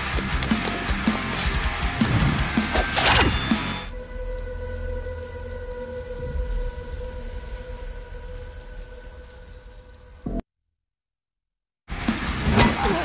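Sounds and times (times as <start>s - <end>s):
held drone tone: 2.9s - 10.4s
low rumble: 3.9s - 10.4s.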